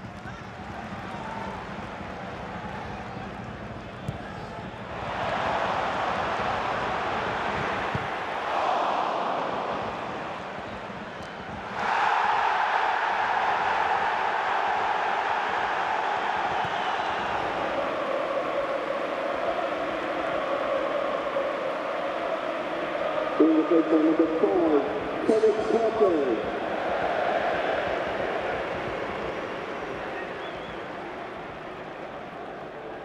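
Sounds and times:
stadium crowd noise: 0:00.0 - 0:33.0.

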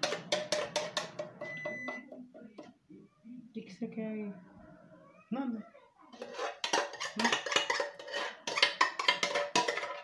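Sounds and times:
short electronic beep: 0:01.4 - 0:02.1.

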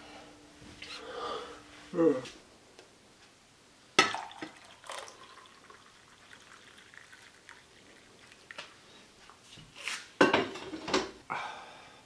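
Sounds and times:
man grunting: 0:01.9 - 0:02.3
faint kitchen clatter: 0:04.0 - 0:11.2.

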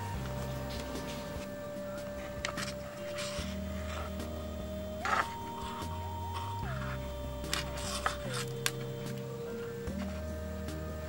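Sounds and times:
low bass line: 0:00.0 - 0:11.0
smooth held melody: 0:00.0 - 0:11.0.

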